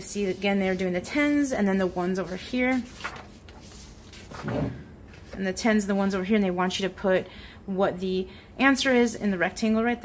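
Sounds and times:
paper page turning: 0:01.8 - 0:05.4.

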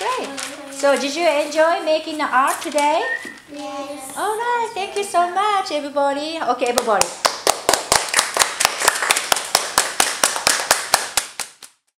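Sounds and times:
group clapping in rhythm: 0:06.8 - 0:11.9.

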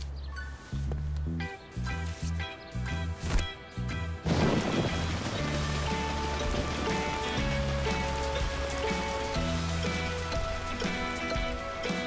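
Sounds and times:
background music with bass line: 0:00.0 - 0:12.0
steady rain falling: 0:04.2 - 0:12.0.

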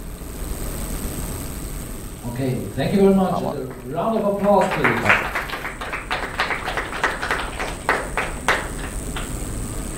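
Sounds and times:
small audience applauding: 0:03.4 - 0:09.9.

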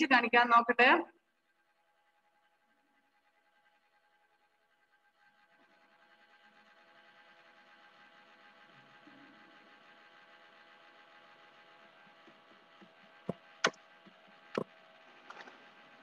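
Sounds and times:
faint hum of held tones: 0:00.0 - 0:16.0.

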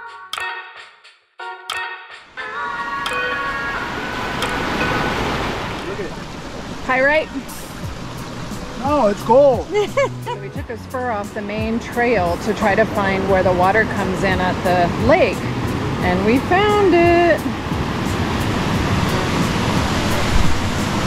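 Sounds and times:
background music with plucked notes: 0:00.0 - 0:06.0, 0:07.1 - 0:21.0
creek running over rocks: 0:03.0 - 0:21.0
voices: 0:05.7 - 0:07.7, 0:08.7 - 0:17.6.

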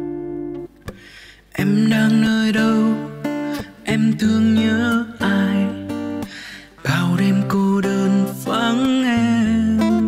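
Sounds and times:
acoustic guitars playing: 0:00.0 - 0:10.0.

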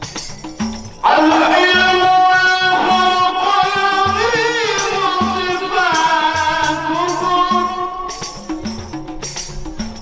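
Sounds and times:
hand-drum rhythm: 0:00.0 - 0:10.0
man singing devotional song: 0:01.0 - 0:08.4.

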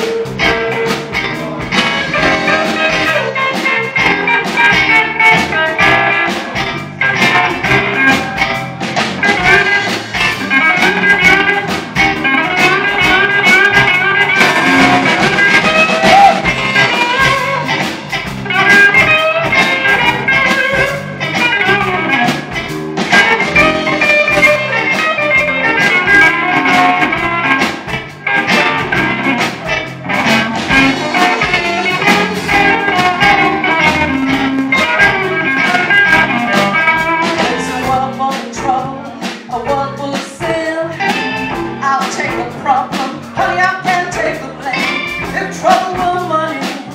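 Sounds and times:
electric guitar solo: 0:00.0 - 0:39.4, 0:40.8 - 0:46.9
drums: 0:00.0 - 0:46.9.

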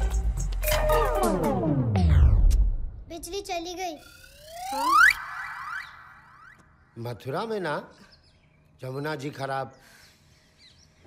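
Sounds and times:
synthesized rising pitch sweep: 0:04.0 - 0:06.8.

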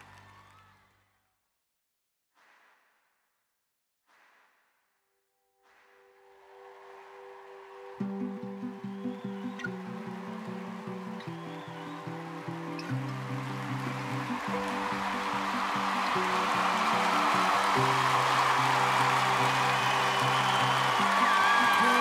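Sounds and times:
audience applause and cheering: 0:00.0 - 0:00.9, 0:06.4 - 0:22.0
shrill cheers and screams: 0:07.2 - 0:22.0.

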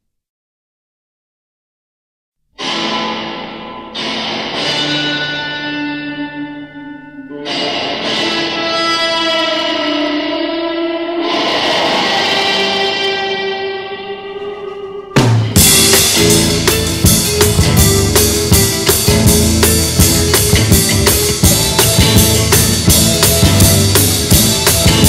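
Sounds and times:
sustained electric guitar chords: 0:02.6 - 0:25.0.

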